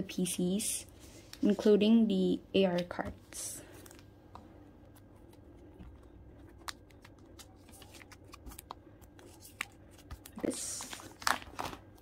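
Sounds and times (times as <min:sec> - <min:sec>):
plastic sleeves crinkling: 0:04.8 - 0:12.0.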